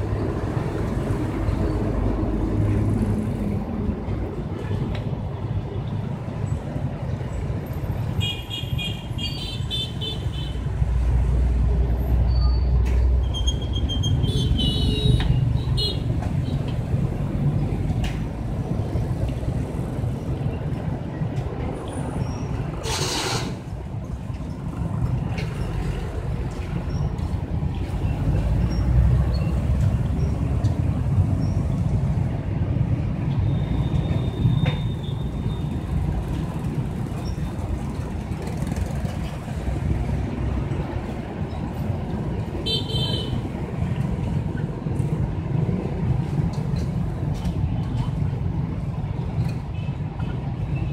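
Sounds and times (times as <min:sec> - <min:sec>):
street traffic rumble: 0:00.0 - 0:50.9.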